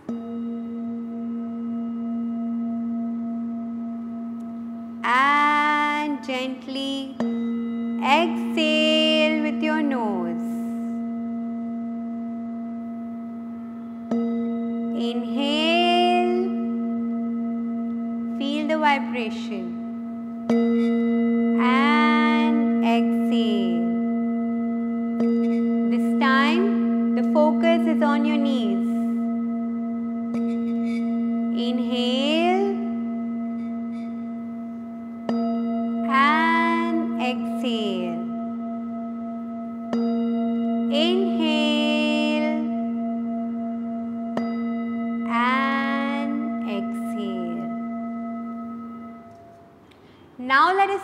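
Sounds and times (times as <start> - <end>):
wavering tone bending upward: 0.0 - 49.9
singing bowl ringing: 0.0 - 51.0.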